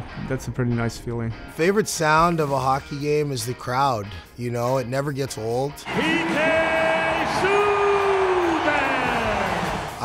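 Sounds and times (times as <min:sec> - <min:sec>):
crowd noise: 0:05.8 - 0:10.0
announcer long held call: 0:05.9 - 0:09.7.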